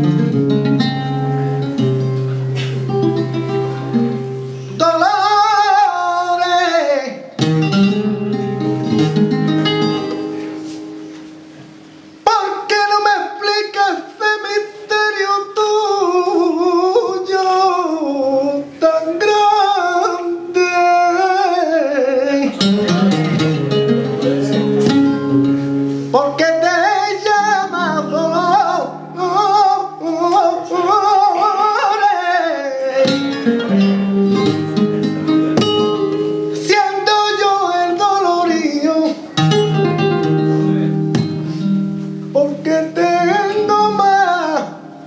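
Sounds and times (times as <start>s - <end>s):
flamenco guitar: 0.0s - 45.0s
man singing flamenco: 2.9s - 11.0s, 12.2s - 45.0s.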